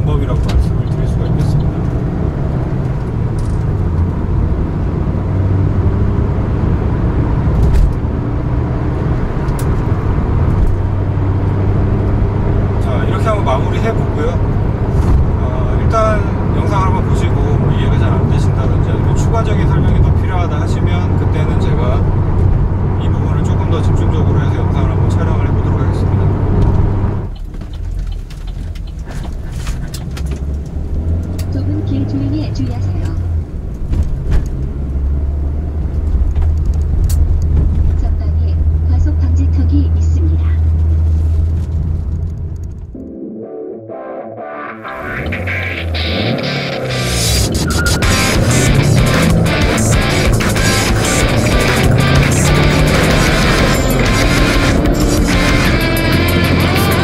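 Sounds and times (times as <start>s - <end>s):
car engine and tyre hum: 0.0s - 43.0s, 44.8s - 57.0s
music: 43.0s - 57.0s.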